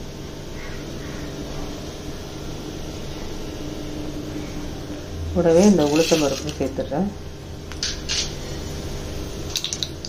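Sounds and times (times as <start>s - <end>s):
seeds sizzling in hot oil: 5.7s - 6.8s, 9.3s - 10.0s.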